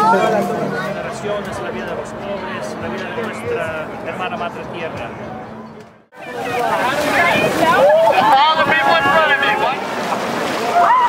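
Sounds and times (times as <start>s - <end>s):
wind: 0.0s - 11.0s
crowd shouting and shrieking: 6.2s - 9.9s, 10.6s - 11.0s
water splashing: 6.2s - 11.0s.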